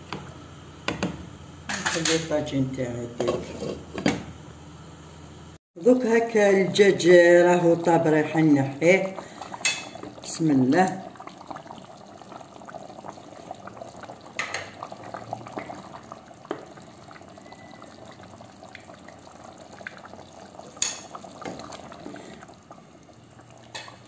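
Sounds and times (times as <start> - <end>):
sauce simmering and bubbling: 8.1 - 24.0.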